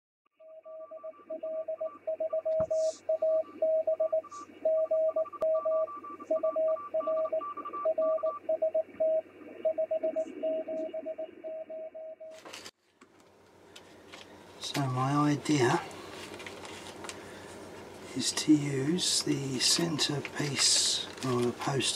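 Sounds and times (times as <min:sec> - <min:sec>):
morse code tone: 0:00.4 - 0:12.4
constant hiss: 0:12.4 - 0:21.9.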